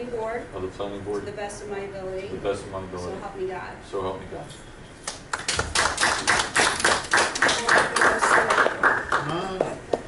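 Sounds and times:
group of people clapping: 5.0 - 10.0.

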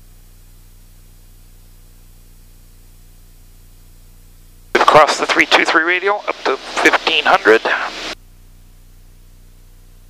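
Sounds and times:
faint low hum: 0.3 - 10.0
cockpit audio hiss: 3.3 - 8.2
spoken word: 4.8 - 8.0.

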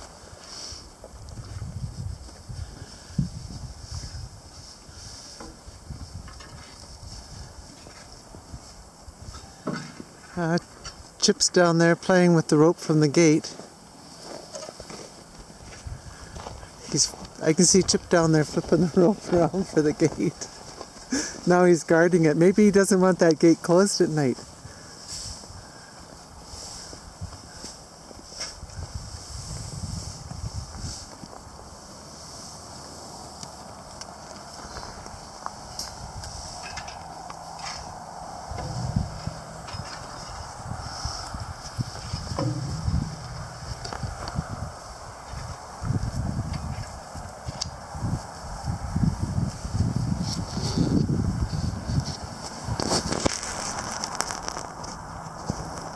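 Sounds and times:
wind buffeting microphone: 0.9 - 9.6, 15.4 - 21.0, 28.6 - 31.6, 34.7 - 53.9
footsteps on frozen snow: 13.3 - 21.5, 24.2 - 36.6.

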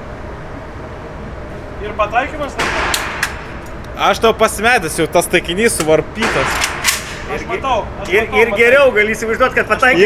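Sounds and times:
gunshot with reverberant tail: 2.6 - 3.6.

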